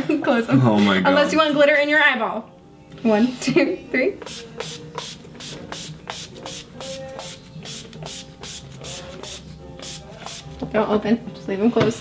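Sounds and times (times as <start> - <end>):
pump spray bottle spraying: 4.2 - 10.5.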